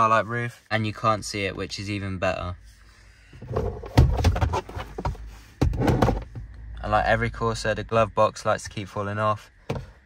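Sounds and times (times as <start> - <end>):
plastic glove box lid rattling: 3.4 - 6.4.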